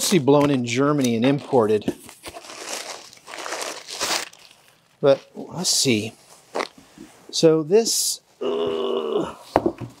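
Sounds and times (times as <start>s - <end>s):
bubble wrap crinkling: 1.5s - 6.8s.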